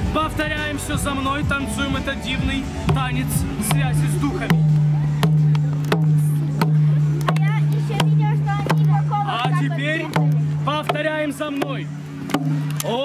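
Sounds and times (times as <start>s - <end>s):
barrel drum beating: 0.0s - 12.8s.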